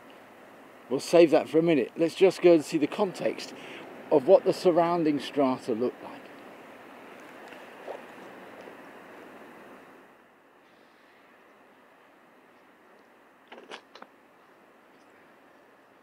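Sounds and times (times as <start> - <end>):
steady outdoor noise: 0.0 - 16.0.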